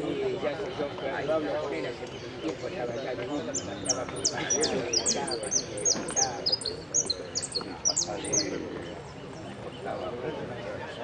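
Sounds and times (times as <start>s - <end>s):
faint voices: 0.0s - 11.0s
finch singing high sharp notes: 3.4s - 8.6s.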